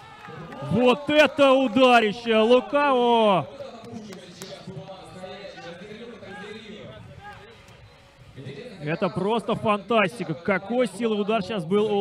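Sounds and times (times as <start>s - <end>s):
faint background voices and shouts: 0.0s - 12.0s.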